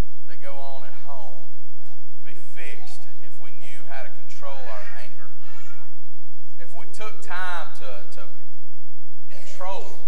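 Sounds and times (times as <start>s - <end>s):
man speaking: 0.3s - 1.5s, 2.2s - 5.4s, 6.6s - 8.4s, 9.3s - 10.0s.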